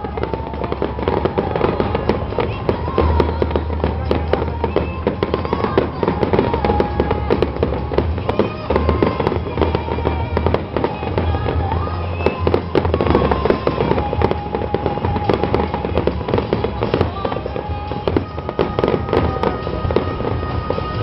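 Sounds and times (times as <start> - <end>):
fireworks bangs and crackles: 0.0 - 21.0
music playing: 0.0 - 21.0.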